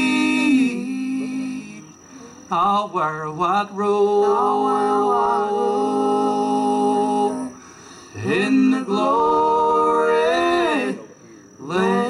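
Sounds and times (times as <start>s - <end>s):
men singing a cappella harmony: 0.0s - 12.0s.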